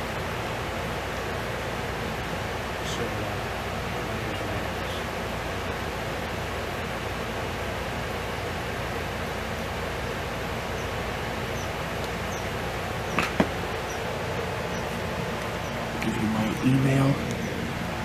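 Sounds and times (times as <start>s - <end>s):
steady background hiss: 0.0s - 18.0s
camera handling knocks: 13.1s - 13.6s.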